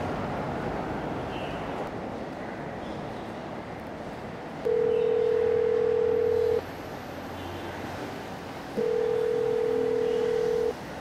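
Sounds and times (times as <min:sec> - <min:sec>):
telephone ringback tone: 0:04.7 - 0:06.6, 0:08.8 - 0:10.8.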